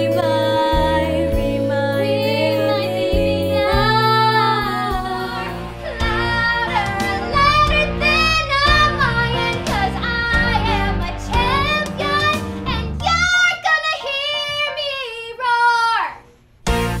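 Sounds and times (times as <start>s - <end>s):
young woman singing: 0.0s - 15.5s.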